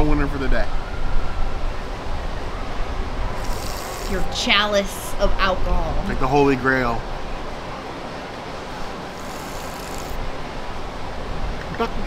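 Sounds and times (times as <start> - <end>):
low rumble with hiss: 0.0 - 12.0.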